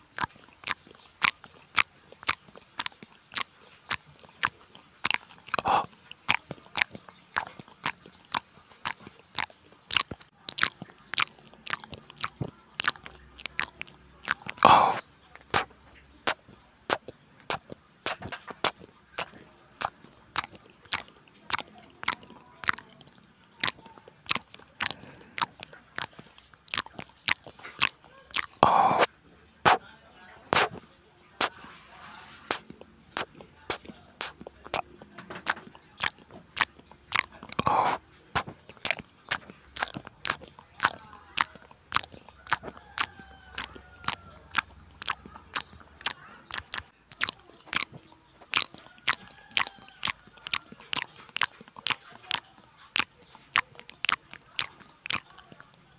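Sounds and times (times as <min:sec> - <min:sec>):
loud crunches: 0:00.0 - 0:29.8, 0:30.5 - 0:30.8, 0:32.4 - 0:55.8
wet chewing mouth clicks: 0:00.0 - 0:29.9, 0:30.5 - 0:55.9.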